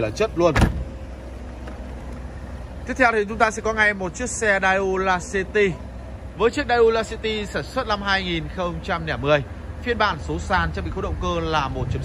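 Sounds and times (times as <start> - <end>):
low outdoor rumble: 0.0 - 12.0
man's voice: 6.4 - 12.0.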